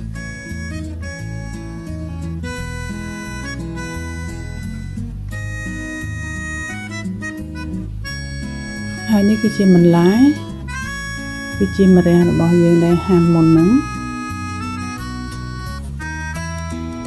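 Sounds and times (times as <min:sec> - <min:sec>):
plucked guitar-like notes: 0:00.0 - 0:17.0
reedy melody line: 0:00.0 - 0:17.0
steady bass: 0:00.0 - 0:17.0.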